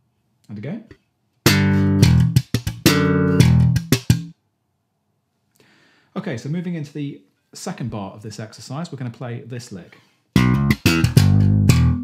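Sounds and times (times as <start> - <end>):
slap bass guitar: 1.4 - 4.3, 10.4 - 12.0.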